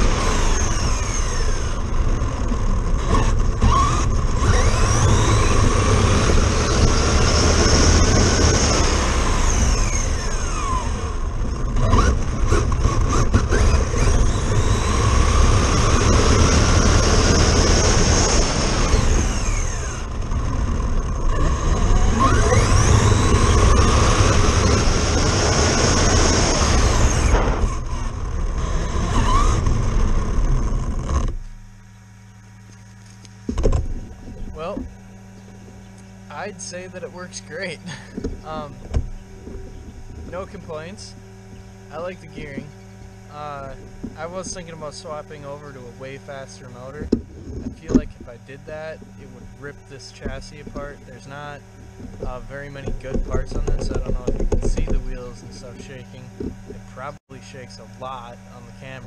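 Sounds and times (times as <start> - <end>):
road rumble and rushing: 0.0 - 32.1, 32.7 - 59.0
rc truck motor whining: 0.0 - 59.0.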